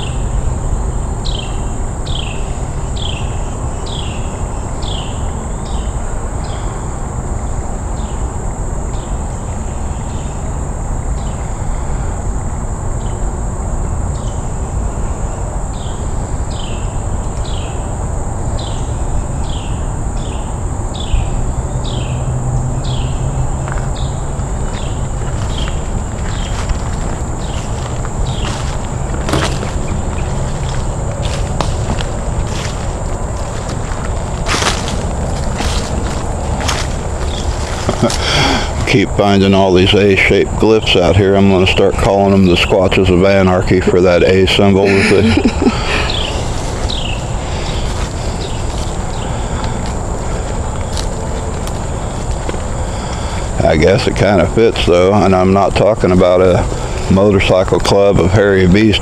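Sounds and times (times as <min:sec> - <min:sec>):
insect high-pitched drone: 0:00.0 - 0:59.0.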